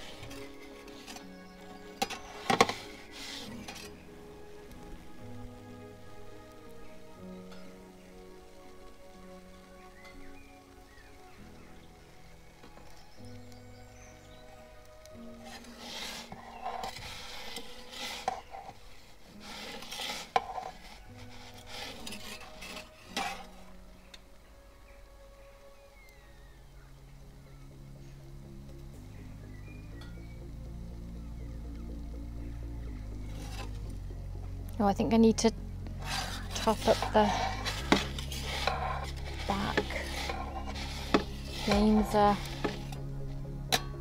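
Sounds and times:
metal peel scraping stone floor: 0.0s - 5.5s, 12.5s - 24.2s, 33.2s - 34.1s, 35.3s - 44.0s.

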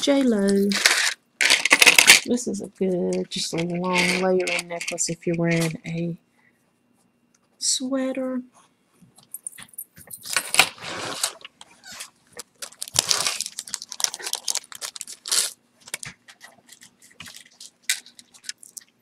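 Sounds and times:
faint steady hum: 0.0s - 19.0s
plastic bags rustling: 10.2s - 19.0s.

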